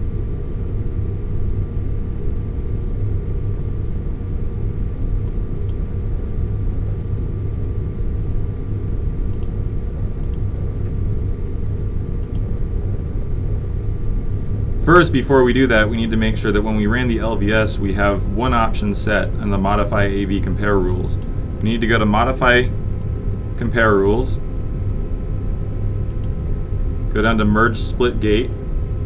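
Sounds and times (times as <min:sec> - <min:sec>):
faint steady tones: 0:00.0 - 0:29.0
low background rumble: 0:00.0 - 0:29.0
faint clicks: 0:10.2 - 0:10.4, 0:12.2 - 0:12.5, 0:26.1 - 0:26.4.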